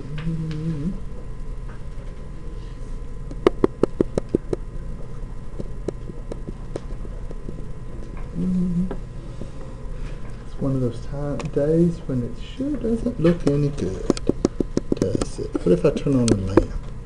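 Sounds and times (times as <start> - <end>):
man humming: 0.0 - 1.0, 8.3 - 9.0
steady background hum: 0.0 - 17.0.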